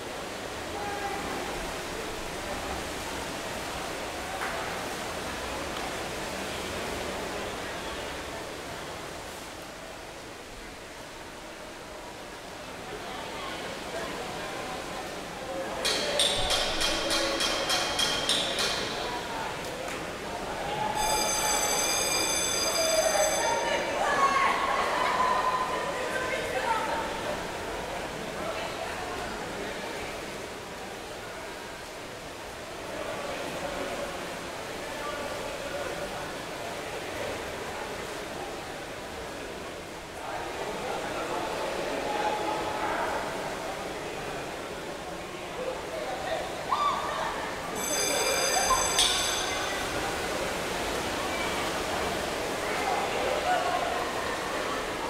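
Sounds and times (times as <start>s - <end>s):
pool water rushing: 0.0s - 55.0s.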